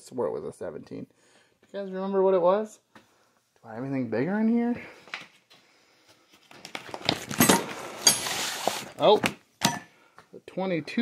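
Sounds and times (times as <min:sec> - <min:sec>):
rustling and shuffling: 0:04.7 - 0:09.4.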